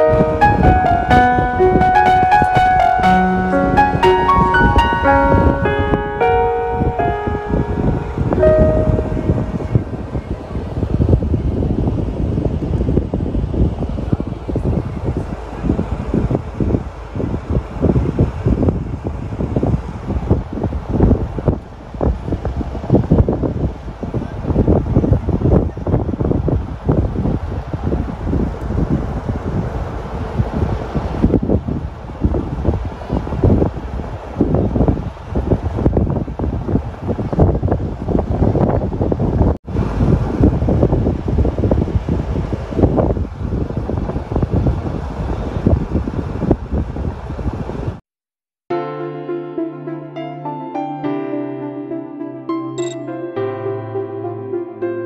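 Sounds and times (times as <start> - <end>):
background music: 0.0 - 10.0, 48.7 - 55.0
wind buffeting microphone: 0.0 - 48.0.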